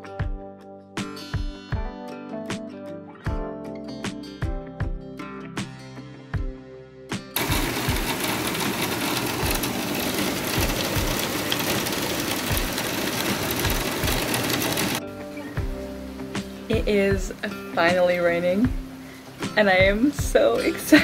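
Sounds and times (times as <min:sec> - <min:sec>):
guitar music with a beat: 0:00.0 - 0:21.0
heavy rain: 0:07.4 - 0:15.0.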